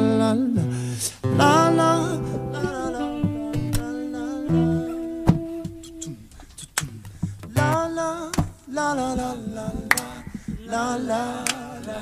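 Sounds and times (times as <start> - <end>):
acoustic guitar strum: 1.2 - 6.1
person humming: 1.4 - 6.3.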